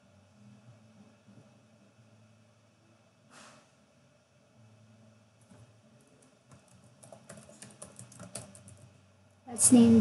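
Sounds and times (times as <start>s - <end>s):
keyboard key clicks: 6.5s - 8.8s.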